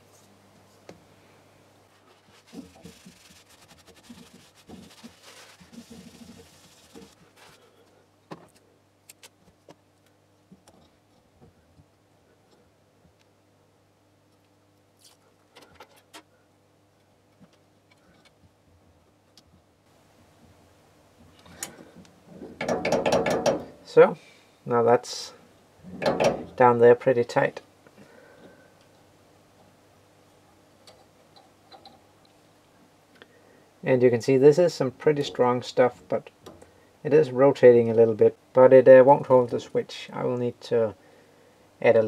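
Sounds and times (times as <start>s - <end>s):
faint steady low hum: 0.0s - 42.0s
hands rubbing and clicking parts: 1.9s - 11.9s.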